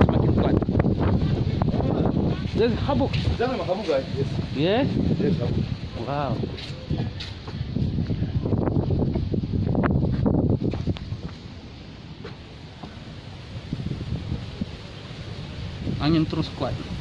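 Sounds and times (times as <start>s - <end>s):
leaves rustling: 0.0s - 17.0s
wind gusting over microphone: 0.0s - 17.0s.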